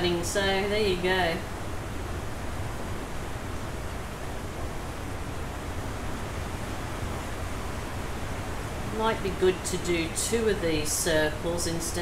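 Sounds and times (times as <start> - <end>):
torrential rain: 0.0 - 12.0.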